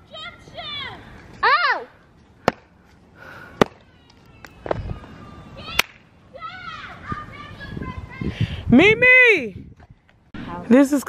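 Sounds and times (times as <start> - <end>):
distant faint shouting voices: 3.2 - 8.2
sharp slapping claps: 5.7 - 6.0.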